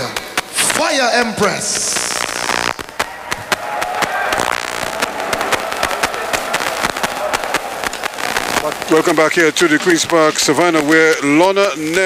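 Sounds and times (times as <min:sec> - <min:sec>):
sharp individual claps: 0:02.0 - 0:09.3
audience applauding: 0:02.0 - 0:12.0.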